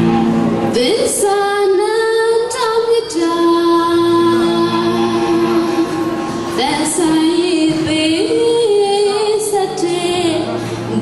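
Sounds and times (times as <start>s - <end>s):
woman singing slow song: 0.7s - 11.0s
singer breathing: 10.5s - 11.0s.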